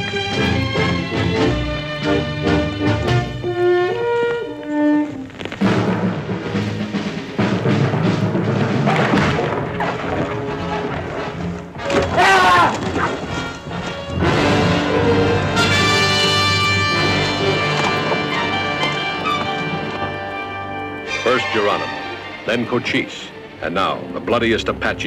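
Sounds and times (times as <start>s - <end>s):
orchestral trailer music: 0.0s - 25.0s
heavy thuds: 5.1s - 21.2s.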